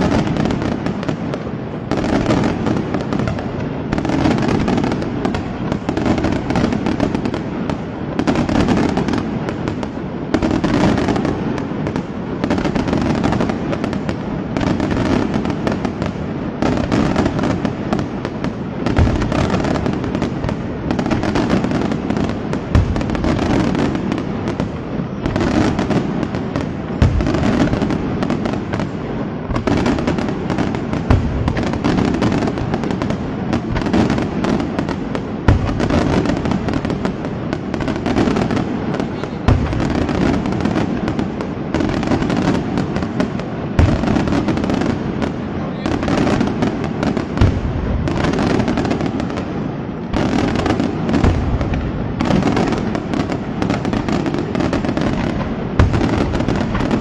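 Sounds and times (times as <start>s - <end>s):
fireworks crackling: 0.0s - 57.0s
loud firework bang: 26.6s - 28.9s, 39.0s - 41.0s, 50.1s - 57.0s.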